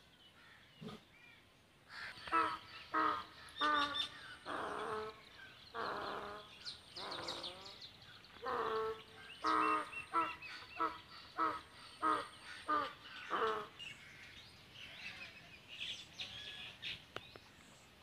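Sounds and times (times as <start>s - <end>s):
small birds chirping: 0.0s - 18.0s
crows cawing: 1.9s - 7.7s, 8.4s - 14.4s.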